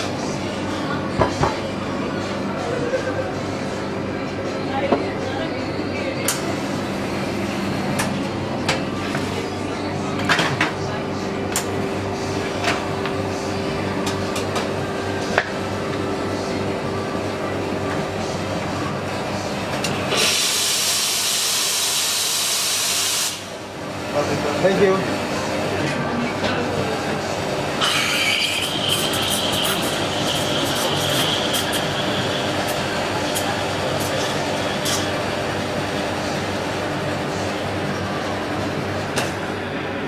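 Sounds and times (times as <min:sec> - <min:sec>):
espresso machine hum: 0:00.0 - 0:40.0
steam hissing: 0:20.1 - 0:23.5, 0:27.8 - 0:34.1
portafilter and cups clacking: 0:27.8 - 0:35.2.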